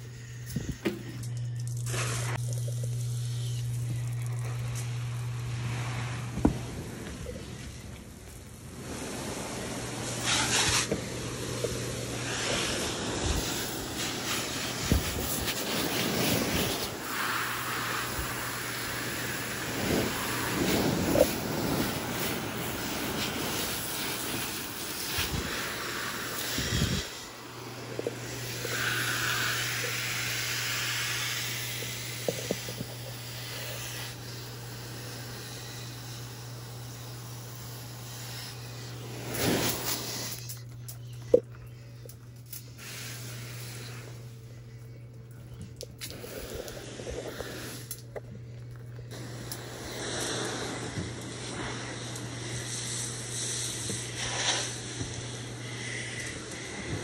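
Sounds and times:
hose water spraying on leaves: 0.0 - 41.0, 42.5 - 44.3, 45.9 - 48.0, 49.0 - 57.0
steady low hum: 0.0 - 57.0.

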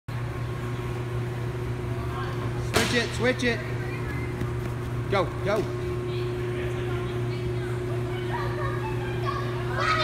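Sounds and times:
low mechanical hum: 0.1 - 10.0.

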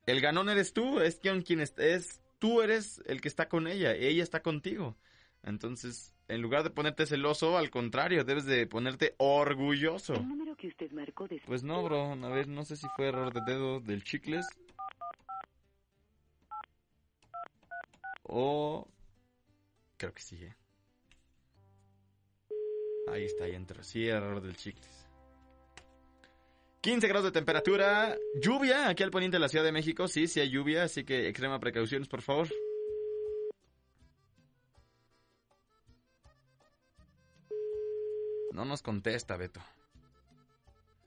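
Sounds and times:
soft background music: 0.0 - 41.0
telephone ringing tone: 22.5 - 23.5, 27.6 - 28.6, 32.5 - 33.5, 37.5 - 38.6.

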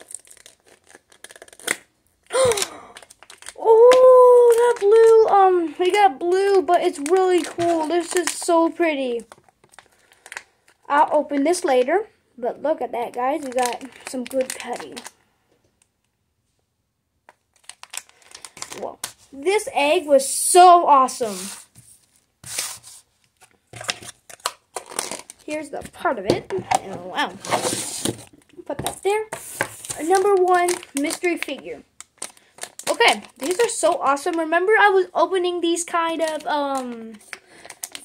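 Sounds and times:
plastic packet crinkling: 0.0 - 11.9, 13.0 - 15.2, 17.3 - 19.3, 23.4 - 35.0, 35.6 - 38.0
child's drawn-out ooh: 2.3 - 3.0, 3.6 - 4.8
child exclaiming: 3.5 - 9.3, 30.0 - 31.8, 32.9 - 37.2.

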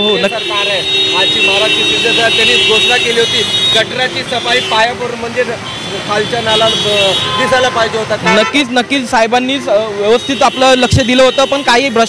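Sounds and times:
men talking: 0.0 - 12.0
street traffic: 0.0 - 12.0.

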